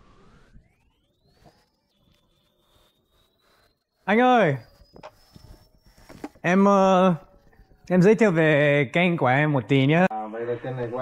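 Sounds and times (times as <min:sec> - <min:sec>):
faint high-pitched tone: 0:00.0 - 0:11.0.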